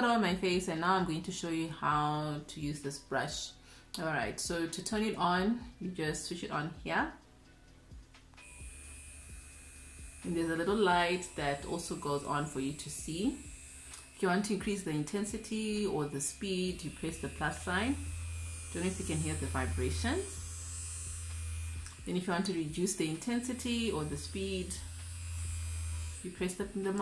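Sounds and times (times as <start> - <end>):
cleansing brush motor whine: 8.4 - 27.0.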